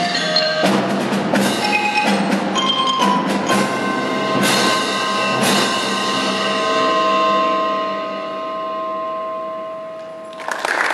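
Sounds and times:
percussion chord ringing: 0.0 - 10.9.

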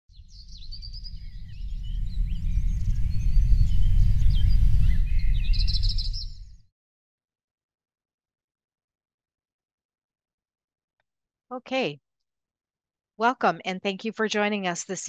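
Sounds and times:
birds chirping and singing: 0.1 - 6.5
low rumble: 0.3 - 6.5.

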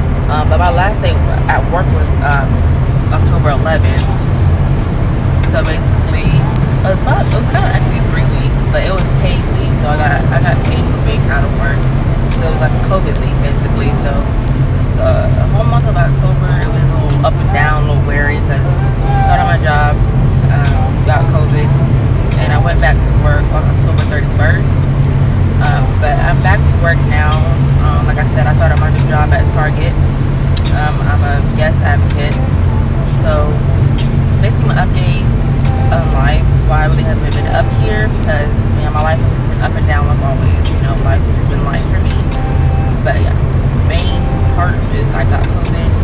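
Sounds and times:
woman talking: 0.0 - 4.4, 5.2 - 24.9, 25.6 - 46.0
steady low hum: 0.0 - 46.0.

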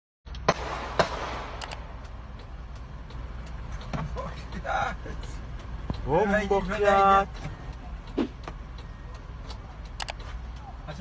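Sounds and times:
vehicle engine rumbling: 0.3 - 11.0
sharp loud bangs: 0.4 - 2.0
faint clicks: 1.6 - 11.0.

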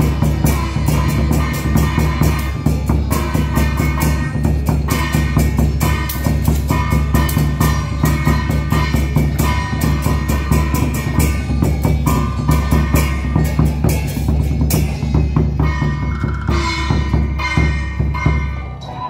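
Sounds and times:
fast drum strikes: 0.0 - 18.6
ringing metal percussion: 0.0 - 19.0.

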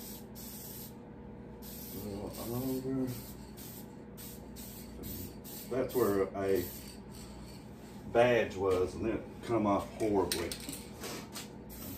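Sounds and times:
spray paint can hissing: 0.0 - 0.9, 1.6 - 7.6.

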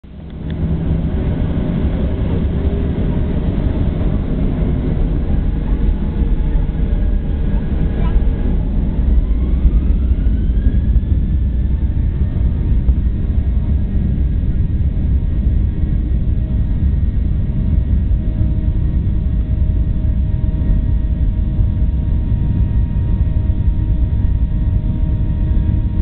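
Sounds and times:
aircraft cabin engine rumble: 0.0 - 26.0
faint rising whine: 0.1 - 26.0.

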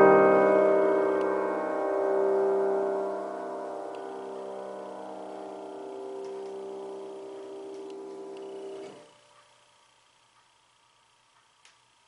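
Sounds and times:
grand piano chord ringing: 0.0 - 9.0.

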